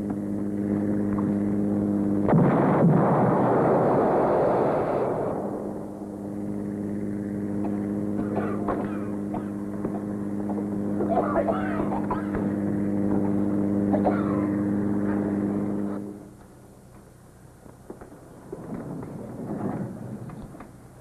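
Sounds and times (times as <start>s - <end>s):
engine drone: 0.0s - 21.0s
indistinct voices: 11.0s - 12.5s.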